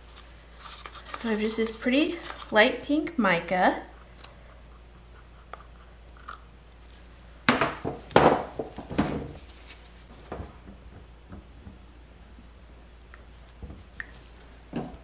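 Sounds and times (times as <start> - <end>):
low steady hum: 0.0 - 15.0.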